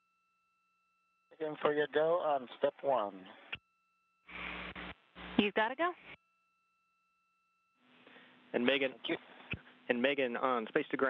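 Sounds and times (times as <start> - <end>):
faint steady hum tones: 0.0 - 11.0
radio channel hiss: 4.3 - 5.6.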